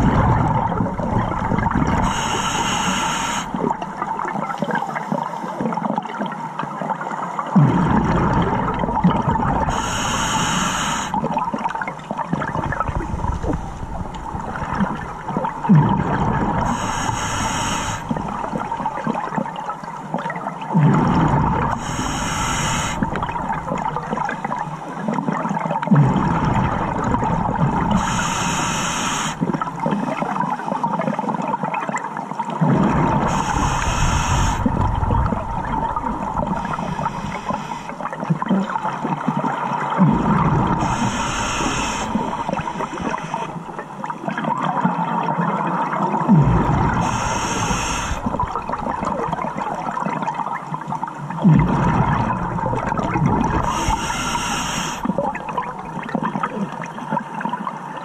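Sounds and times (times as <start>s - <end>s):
low bubbling water rumble: 0.0s - 2.8s, 7.5s - 10.3s, 11.1s - 30.3s, 32.6s - 50.5s, 51.3s - 56.6s
short high water hiss: 2.0s - 3.6s, 9.7s - 11.2s, 16.6s - 18.9s, 21.7s - 24.2s, 27.9s - 29.4s, 33.2s - 34.8s, 36.0s - 38.0s, 40.8s - 43.8s, 46.9s - 49.0s, 53.6s - 55.6s.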